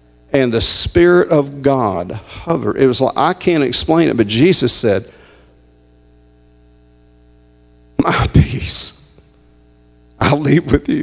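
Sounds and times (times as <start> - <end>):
electrical mains hum: 0.0 - 11.0
voice echo: 0.4 - 5.7, 8.0 - 9.6.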